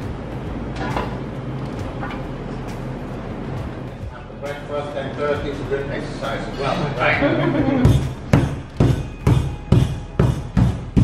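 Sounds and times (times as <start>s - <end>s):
kitchen ventilation hum: 0.0s - 11.0s.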